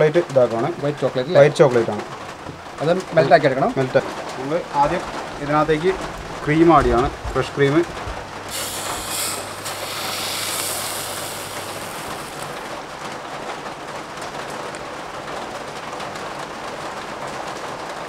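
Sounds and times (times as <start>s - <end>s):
cream pouring into saucepan: 8.5s - 12.7s.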